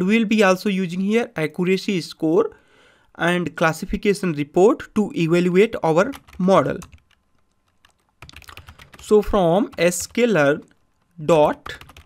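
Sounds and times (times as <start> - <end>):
keyboard typing: 6.0 - 12.0.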